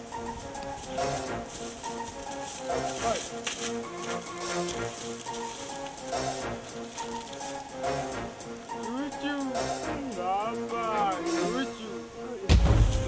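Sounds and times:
film score music with keyboard: 0.0s - 13.0s.

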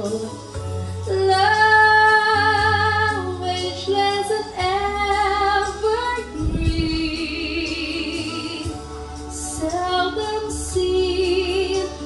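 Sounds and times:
backing music: 0.0s - 12.0s
woman singing into microphone: 0.0s - 12.0s.

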